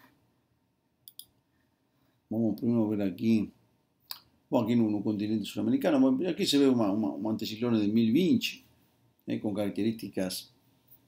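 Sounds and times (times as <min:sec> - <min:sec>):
computer mouse clicks: 0:01.0 - 0:01.3.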